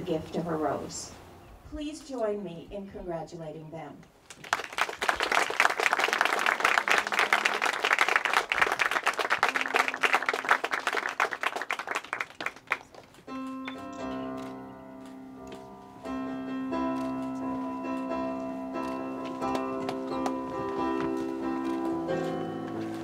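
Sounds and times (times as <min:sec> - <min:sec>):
crowd applauding: 0:04.3 - 0:14.5
slow piano music: 0:13.2 - 0:23.0.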